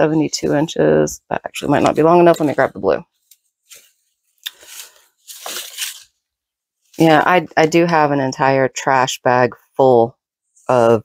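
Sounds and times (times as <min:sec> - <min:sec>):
paper strips rustling: 0:01.8 - 0:06.2.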